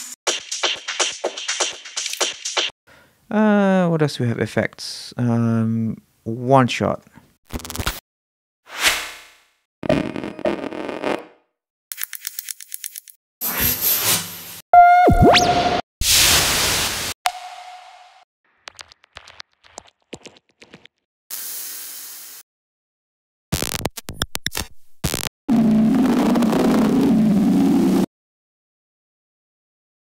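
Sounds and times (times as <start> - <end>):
short electronic blip: 14.8 - 15.8.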